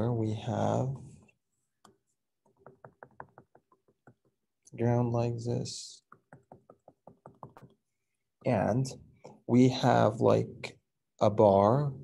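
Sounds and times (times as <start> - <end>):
stylus tapping on tablet screen: 1.2 - 4.7, 6.0 - 9.4.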